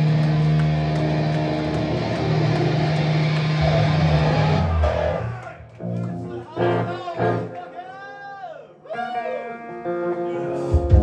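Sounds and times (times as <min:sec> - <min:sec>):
distorted electric guitar chord: 0:00.0 - 0:05.2
live metal band playing: 0:00.0 - 0:07.6, 0:09.6 - 0:11.0.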